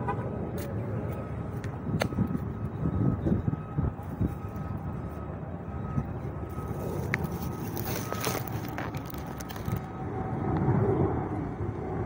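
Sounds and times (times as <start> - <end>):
road traffic rumble: 0.0 - 12.0
wind buffeting microphone: 0.0 - 12.0.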